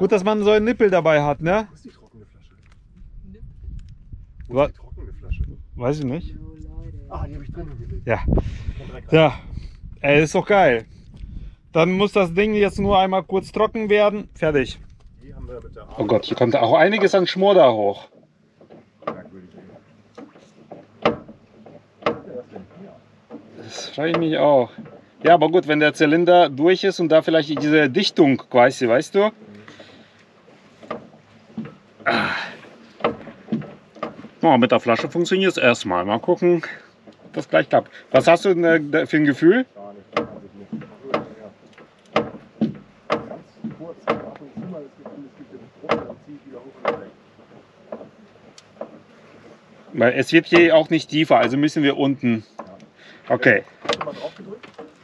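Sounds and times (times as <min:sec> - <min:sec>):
faint handling rustle: 0:14.8 - 0:55.0
sharp clicks and knocks: 0:18.0 - 0:35.8, 0:40.1 - 0:51.7, 0:52.5 - 0:53.0, 0:53.7 - 0:55.0.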